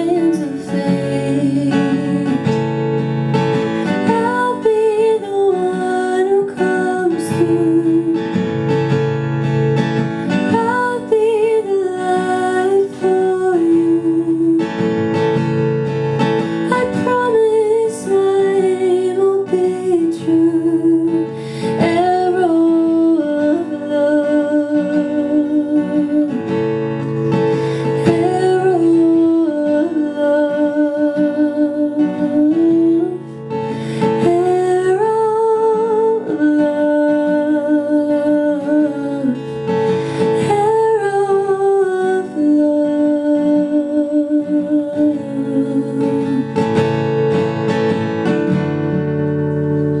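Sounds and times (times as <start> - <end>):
acoustic guitars: 0.0 - 50.0
woman singing: 0.0 - 50.0.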